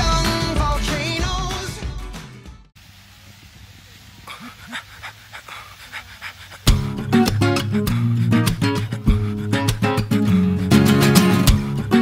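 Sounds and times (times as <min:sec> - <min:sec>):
person panting: 0:04.2 - 0:11.1
strummed acoustic guitar music: 0:06.7 - 0:12.0.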